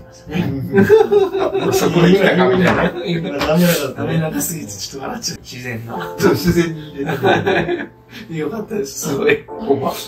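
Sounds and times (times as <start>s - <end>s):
men speaking: 0.0s - 10.0s
men laughing: 0.4s - 3.9s, 6.2s - 8.3s.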